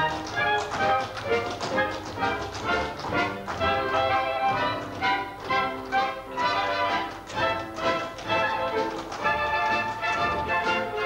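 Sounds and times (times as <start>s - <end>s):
live band playing show tune: 0.0s - 11.0s
tap dancing on stage boards: 0.0s - 11.0s.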